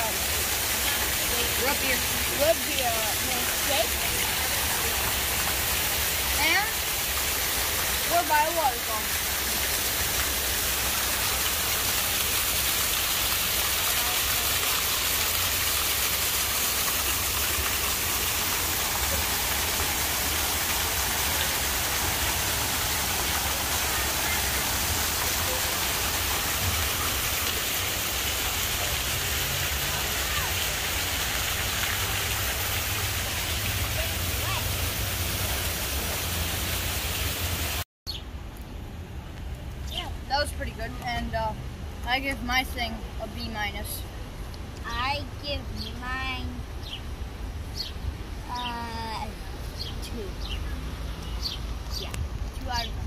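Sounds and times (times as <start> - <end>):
fountain water rushing: 0.0 - 38.2, 39.6 - 53.0.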